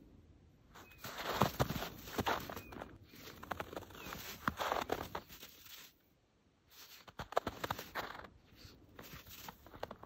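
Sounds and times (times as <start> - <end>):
dog paws crunching in snow: 0.7 - 6.0, 6.7 - 10.0.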